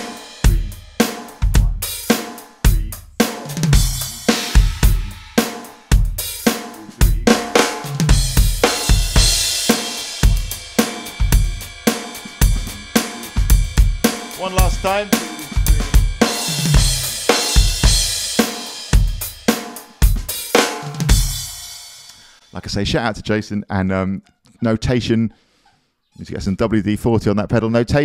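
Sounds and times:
snare drum backbeat: 0:00.0 - 0:21.6
bass drum: 0:00.0 - 0:21.7
electronic drum kit groove: 0:00.0 - 0:22.4
hi-hat: 0:00.0 - 0:22.4
crash cymbal: 0:07.8 - 0:22.6.

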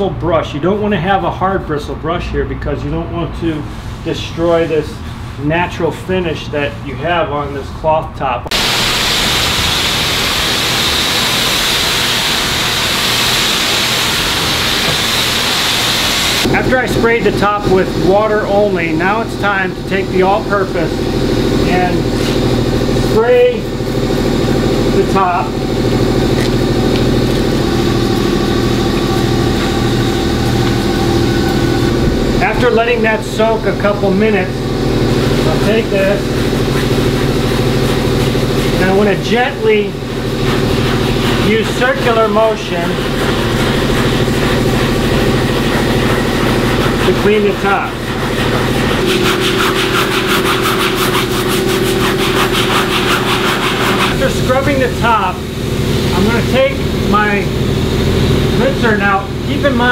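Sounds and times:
low machine hum: 0:00.0 - 0:59.9
brush scrubbing wet fabric: 0:17.4 - 0:56.7
motor droning: 0:20.9 - 0:39.2.

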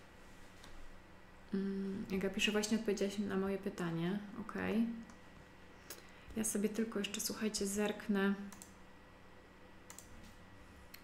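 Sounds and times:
faint computer clicks: 0:08.5 - 0:08.8, 0:09.9 - 0:10.2.

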